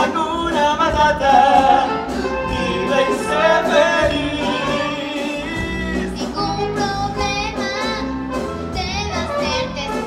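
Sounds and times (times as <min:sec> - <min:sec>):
instrumental accompaniment: 0:00.0 - 0:10.0
steady bass line: 0:00.0 - 0:10.0.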